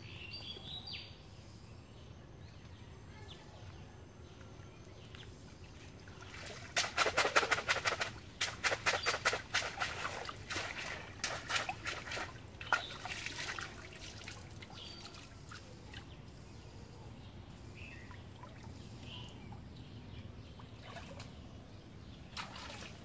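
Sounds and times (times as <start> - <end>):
water splashing and pouring: 5.9 - 15.7, 22.3 - 23.0.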